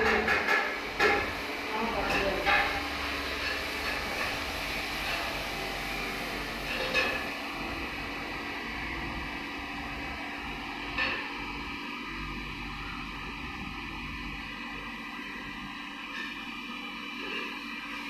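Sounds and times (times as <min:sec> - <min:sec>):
background hum and hiss: 0:00.0 - 0:18.0.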